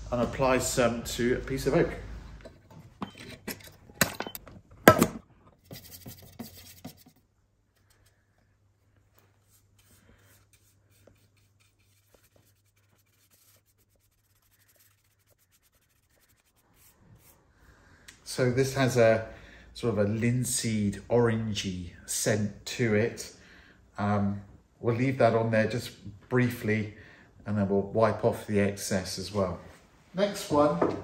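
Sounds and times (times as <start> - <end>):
brush scratching on wood: 5.6 - 7.2, 9.2 - 17.4.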